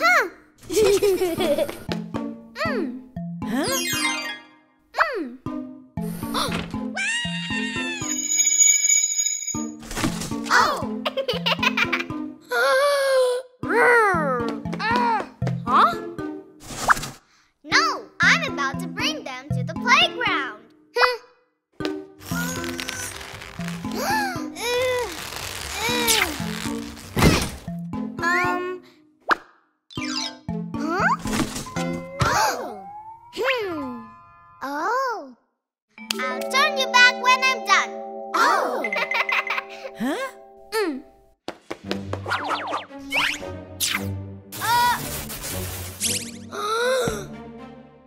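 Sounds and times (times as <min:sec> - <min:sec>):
cartoon background music: 0:00.0 - 0:08.8, 0:09.6 - 0:17.1, 0:17.7 - 0:35.3, 0:35.9 - 0:48.0.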